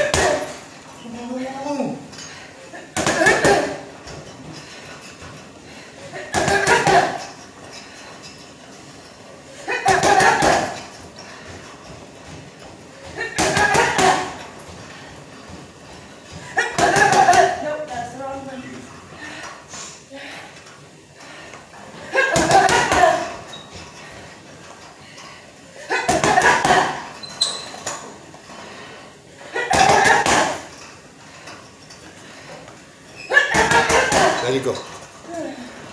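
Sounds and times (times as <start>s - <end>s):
punches hitting heavy bag: 13.2s - 14.5s, 16.6s - 17.6s, 22.3s - 23.4s, 29.7s - 30.7s.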